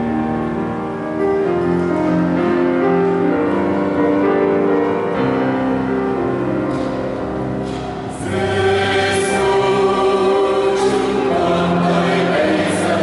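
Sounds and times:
keyboard accompaniment: 0:00.0 - 0:13.0
mixed choir singing a hymn: 0:08.0 - 0:13.0.

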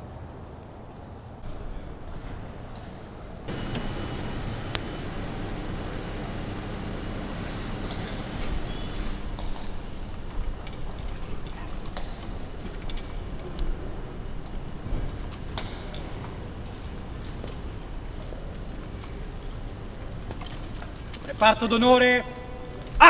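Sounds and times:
footsteps on cobblestones: 0:00.0 - 0:21.3.

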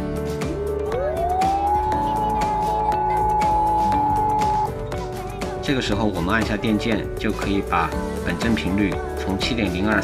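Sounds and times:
background music: 0:00.0 - 0:10.0
radio beat-note whistle: 0:01.0 - 0:04.7.

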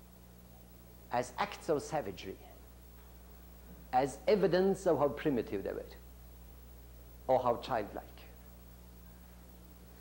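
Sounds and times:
faint tape hiss: 0:00.0 - 0:10.0
low electrical hum: 0:00.0 - 0:10.0.

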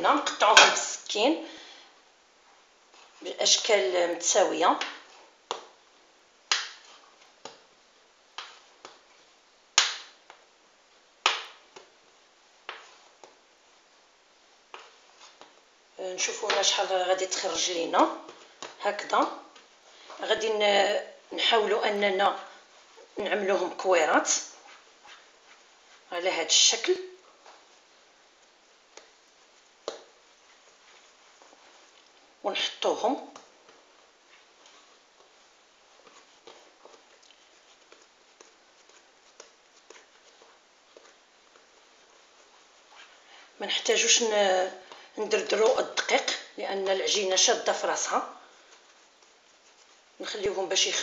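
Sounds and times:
hands rolling bread dough: 0:00.0 - 0:51.0.

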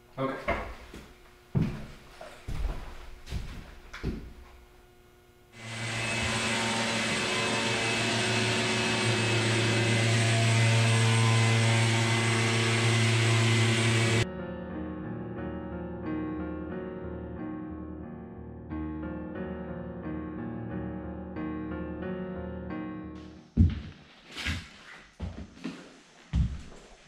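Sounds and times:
shop vacuum running: 0:05.6 - 0:14.2
soft piano music: 0:14.2 - 0:23.6.

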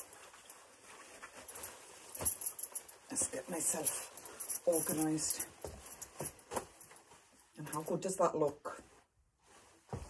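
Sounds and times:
fabric scarf rustling: 0:00.0 - 0:10.0
soft handling sounds: 0:00.0 - 0:10.0.

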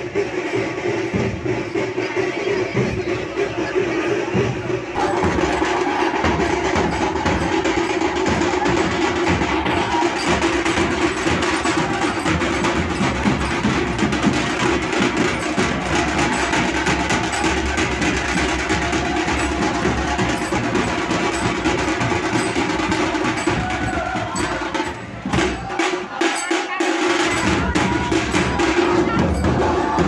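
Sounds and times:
dhol drums beaten fast: 0:00.0 - 0:30.0.

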